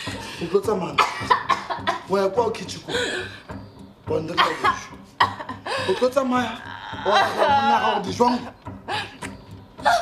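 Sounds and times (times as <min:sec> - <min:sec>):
man and woman arguing: 0:00.0 - 0:10.0.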